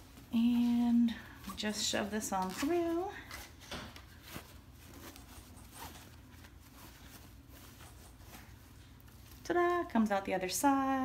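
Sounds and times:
curtain fabric rustling and scraping: 0.0s - 11.0s.

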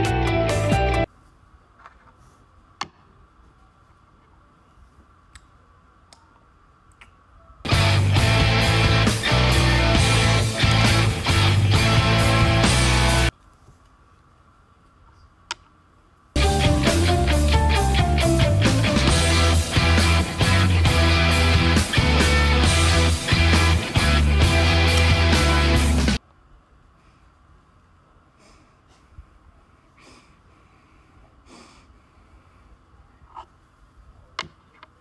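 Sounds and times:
person exhaling through nose: 29.9s - 32.5s.

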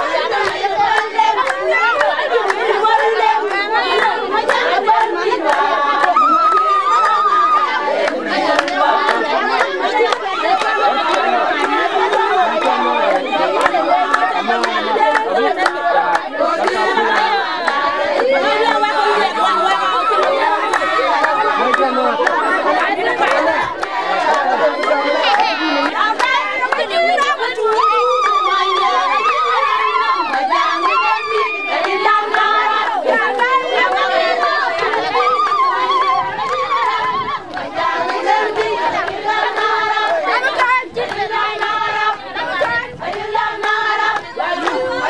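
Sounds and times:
crowd of women talking and shouting: 0.0s - 45.0s
women singing and calling: 0.0s - 45.0s.

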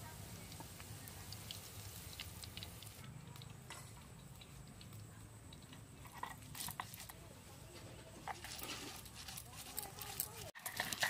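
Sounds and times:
stone muller scraping on grinding stone: 8.2s - 11.0s.

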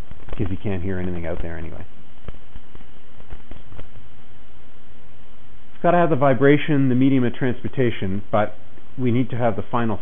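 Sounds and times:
man talking: 0.4s - 1.9s, 5.8s - 10.0s.

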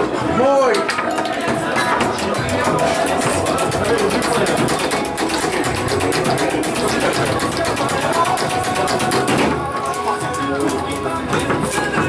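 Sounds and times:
bar background music: 0.0s - 12.0s
foosball ball and rods clattering: 0.7s - 12.0s.

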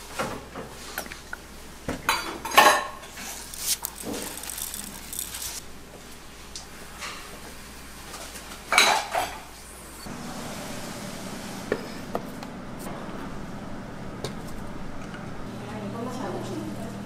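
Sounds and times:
ceramic dishes clattering: 2.1s - 3.3s
steady low hum: 9.5s - 17.0s.

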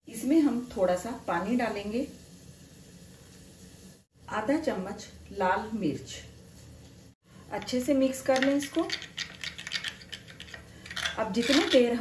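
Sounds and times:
metal spoon scraping glass bowl: 8.7s - 12.0s.

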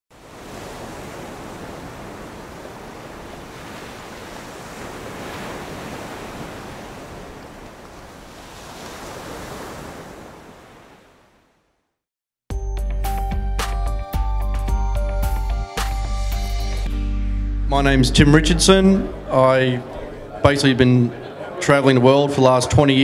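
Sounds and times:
ocean surf washing: 0.1s - 11.5s, 17.6s - 21.8s.

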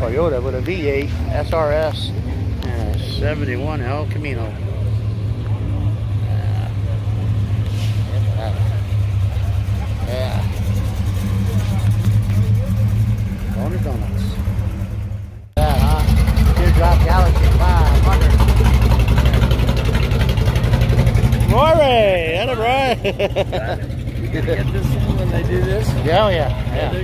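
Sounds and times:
people's voices: 0.0s - 14.7s, 15.6s - 27.0s
car engines idling: 0.0s - 27.0s.

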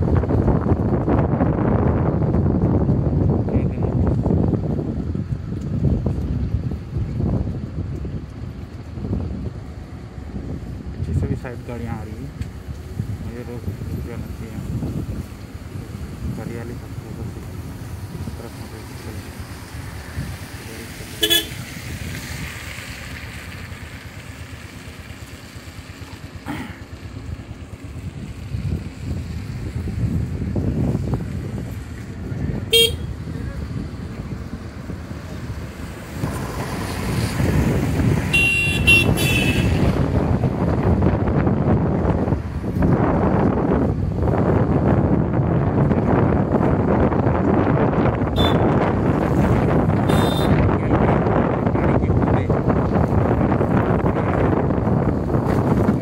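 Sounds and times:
wind on microphone: 0.0s - 26.4s, 27.0s - 56.0s
motorbike engine rumble: 0.0s - 56.0s
horn toots: 21.1s - 21.7s, 32.7s - 33.2s, 38.3s - 40.0s, 48.3s - 48.8s, 50.0s - 50.7s.

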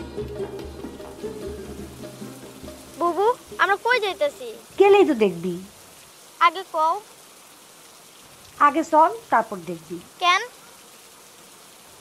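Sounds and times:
rain falling through trees: 0.0s - 12.0s
woman speaking: 3.0s - 4.0s, 4.7s - 5.7s, 8.6s - 10.5s.

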